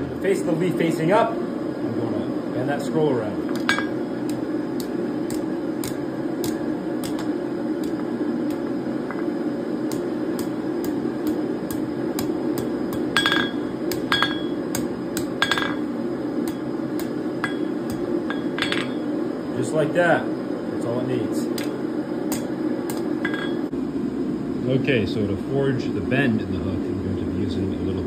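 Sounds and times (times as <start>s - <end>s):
hammer striking steel on anvil: 3.5s - 9.2s, 9.9s - 19.0s, 22.3s - 23.7s
anvil ringing: 12.9s - 14.6s, 15.4s - 15.8s, 17.4s - 19.0s, 23.2s - 23.7s.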